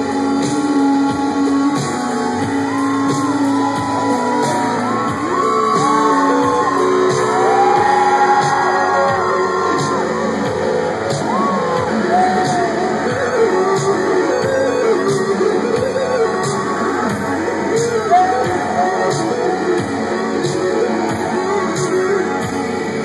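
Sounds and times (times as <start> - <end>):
crowd shouting and whooping: 0.0 - 23.0
rock band playing live: 0.0 - 23.0.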